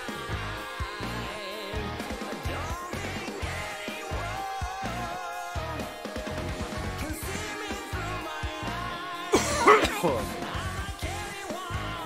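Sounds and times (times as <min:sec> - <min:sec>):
rock song through speakers: 0:00.0 - 0:12.0
man coughing laugh: 0:09.3 - 0:10.4.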